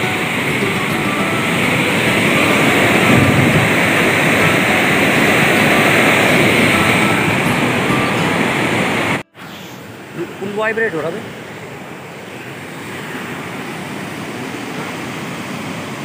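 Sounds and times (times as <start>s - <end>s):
flooded river rushing: 0.0s - 16.0s.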